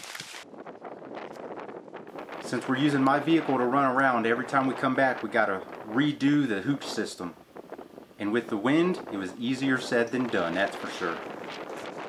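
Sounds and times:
faint crackles: 0:00.0 - 0:00.4, 0:10.1 - 0:12.0
wind buffeting microphone: 0:00.4 - 0:12.0.

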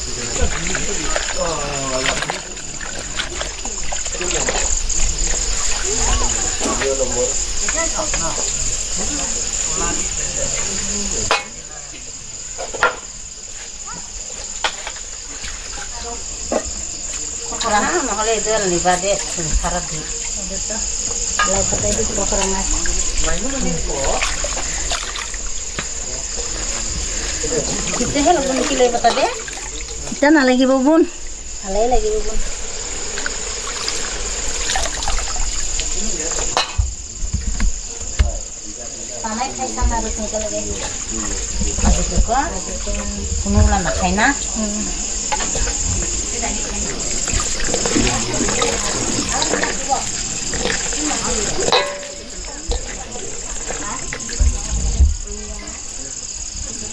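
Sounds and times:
crickets chirping: 0:00.0 - 0:56.9
steel pots clinking: 0:51.5 - 0:52.5.

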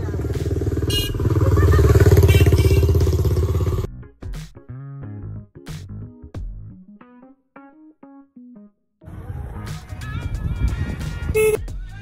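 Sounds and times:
motorcycle engine running: 0:00.0 - 0:03.9.

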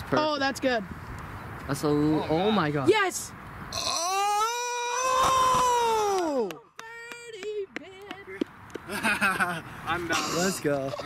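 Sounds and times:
young men whooping and laughing: 0:04.1 - 0:06.6, 0:08.9 - 0:11.0.

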